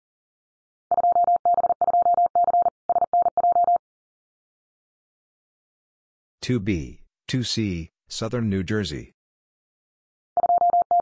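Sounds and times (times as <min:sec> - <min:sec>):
morse code tone: 0:10.4 - 0:11.0.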